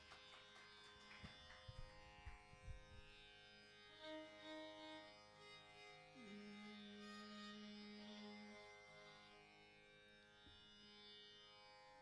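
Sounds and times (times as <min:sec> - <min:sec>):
faint buzzing drone: 0:06.1 - 0:09.4.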